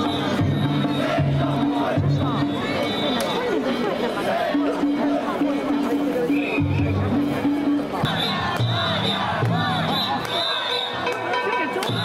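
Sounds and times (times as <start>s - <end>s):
crowd calling and shouting: 0.0s - 12.0s.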